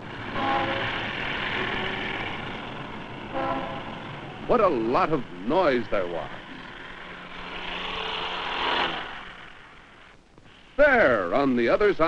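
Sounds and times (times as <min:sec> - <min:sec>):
street traffic rushing: 0:00.0 - 0:11.3
car horn blasts: 0:00.3 - 0:01.0, 0:03.3 - 0:03.9.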